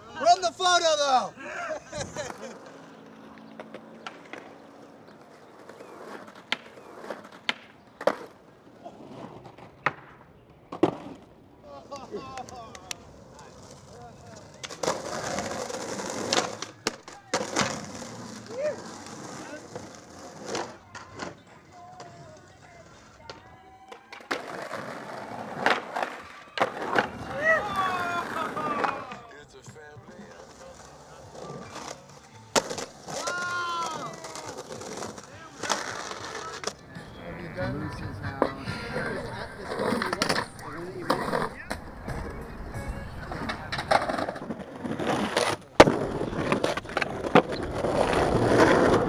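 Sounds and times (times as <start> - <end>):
skateboard wheels rolling on concrete: 0.0 - 49.0
skateboard popping and landing: 1.9 - 11.4, 12.4 - 29.2, 30.4 - 37.0, 38.4 - 49.0.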